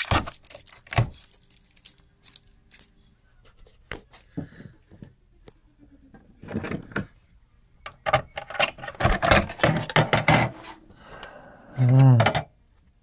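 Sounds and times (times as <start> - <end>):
metal cover clicking and clattering: 8.1 - 10.6
man humming exclamation: 11.6 - 12.3.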